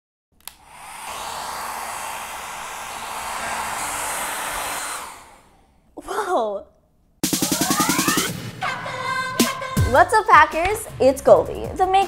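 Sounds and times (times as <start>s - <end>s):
hair dryer switch click: 0.4s - 1.2s
hair dryer blowing: 0.4s - 5.7s, 7.2s - 8.4s.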